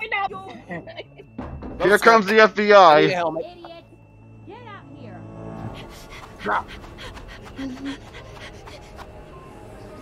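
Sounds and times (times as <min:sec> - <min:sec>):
low background music: 0:00.0 - 0:10.0.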